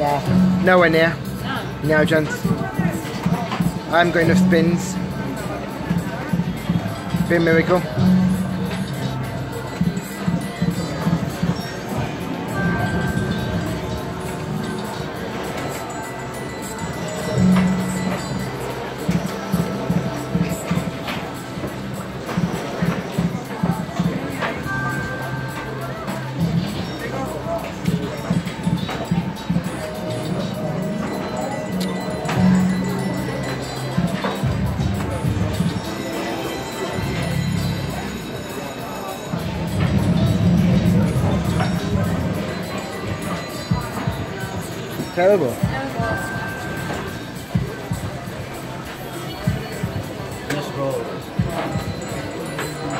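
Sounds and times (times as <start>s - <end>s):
gaming hall background noise: 0.0s - 52.9s
rhythmic electronic slot machine music: 0.0s - 52.9s.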